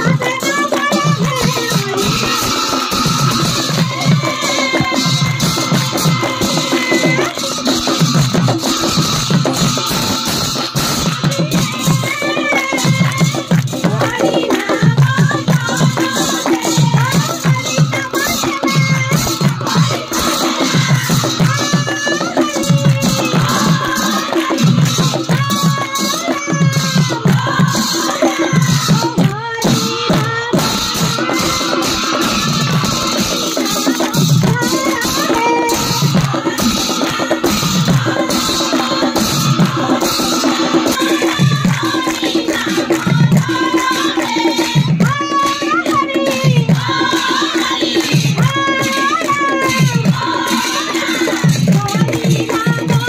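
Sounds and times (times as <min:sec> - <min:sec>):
women singing in chorus: 0:00.0 - 0:53.0
hand-clapping: 0:12.5 - 0:17.6, 0:33.1 - 0:46.4.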